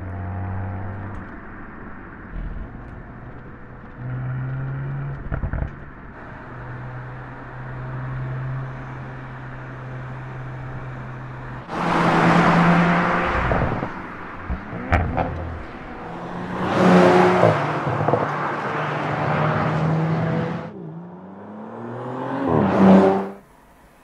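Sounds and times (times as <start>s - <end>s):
car engine accelerating: 0.0s - 23.7s
exhaust cracks: 0.6s - 6.5s, 8.7s - 19.2s.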